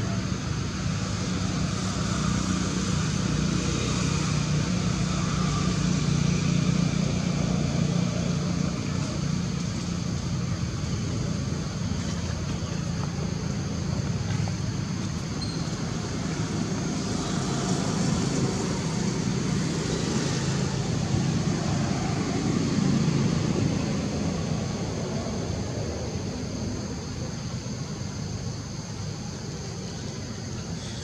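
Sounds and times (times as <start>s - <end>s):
passing vehicle engine rumble: 0.0s - 31.0s.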